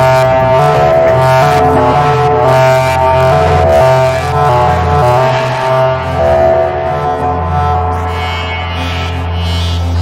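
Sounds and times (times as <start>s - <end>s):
deep bass drone: 0.0s - 10.0s
droning synthesizer chords: 0.0s - 10.0s.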